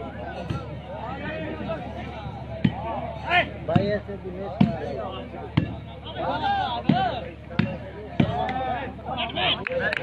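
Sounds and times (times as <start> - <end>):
players shouting: 0.0 - 10.0
volleyball being struck: 4.6 - 4.8, 5.5 - 5.9, 6.8 - 8.6.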